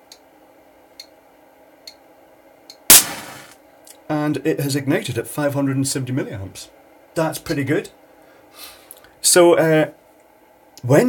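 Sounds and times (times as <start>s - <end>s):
electric match bang: 2.9s - 3.6s.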